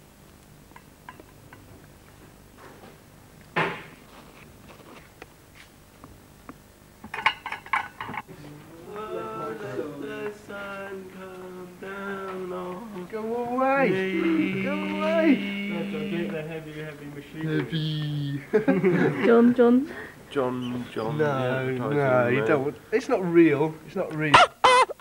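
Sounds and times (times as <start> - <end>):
person singing held notes: 8.3 - 17.0.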